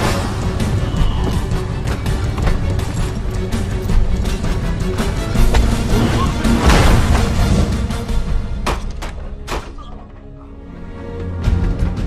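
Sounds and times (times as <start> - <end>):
action film score: 0.0 - 12.0.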